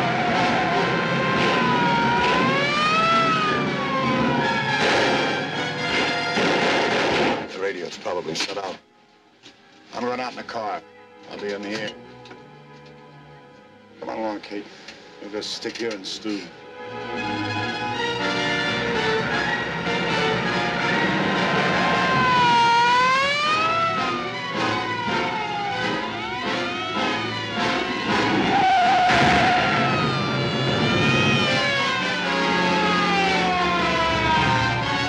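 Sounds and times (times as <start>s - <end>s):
police car sirens: 0.0s - 6.5s, 16.8s - 35.0s
dramatic orchestral music: 0.0s - 7.4s, 9.9s - 35.0s.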